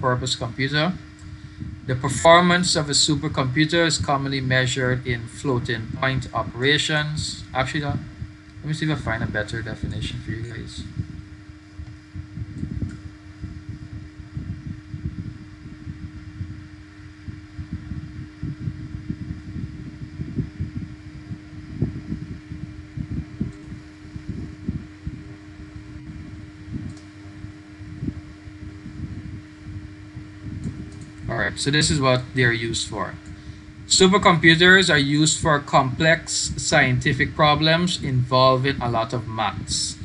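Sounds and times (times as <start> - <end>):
steady hum: 0.0 - 40.0
uneven low rumble: 0.0 - 40.0.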